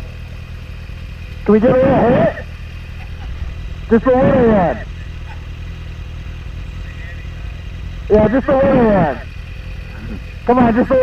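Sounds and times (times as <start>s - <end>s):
engines idling: 0.0s - 11.0s.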